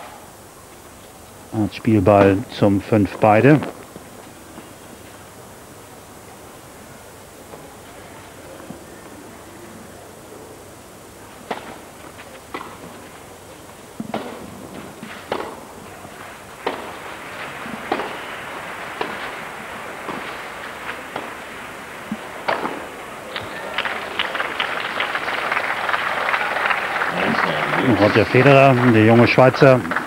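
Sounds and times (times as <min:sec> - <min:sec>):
tennis ball hit by racket: 0:11.4 - 0:11.8, 0:12.5 - 0:12.9, 0:14.0 - 0:15.7, 0:16.6 - 0:16.9, 0:17.6 - 0:18.3, 0:22.1 - 0:23.6
crowd applause: 0:14.2 - 0:30.0.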